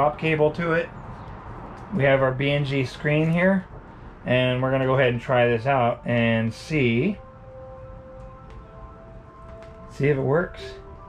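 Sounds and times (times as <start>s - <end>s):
soft music of held tones: 3.4s - 11.0s.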